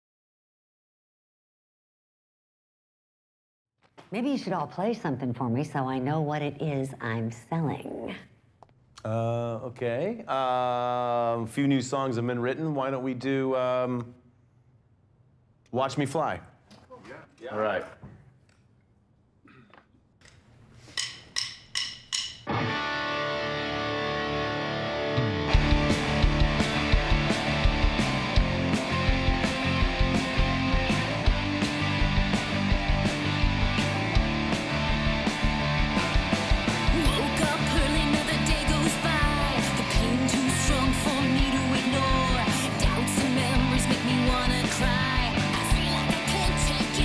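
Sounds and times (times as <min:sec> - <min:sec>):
drumsticks clicking together: 0:20.2 - 0:22.5
rock band ringing chords: 0:22.1 - 0:47.0
heavy drum and bass beats: 0:25.5 - 0:47.0
woman singing: 0:36.9 - 0:47.0.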